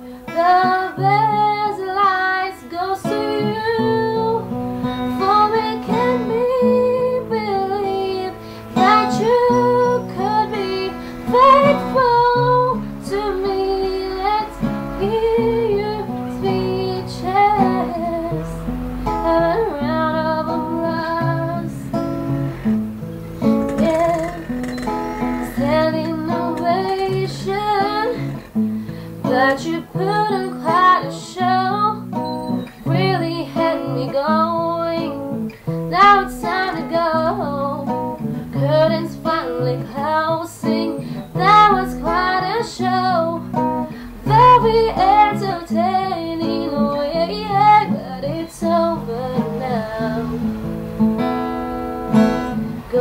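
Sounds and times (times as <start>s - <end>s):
woman singing pop ballad: 0.0s - 22.5s, 23.4s - 24.6s, 25.4s - 50.6s, 51.2s - 53.0s
acoustic guitar chords: 0.0s - 53.0s.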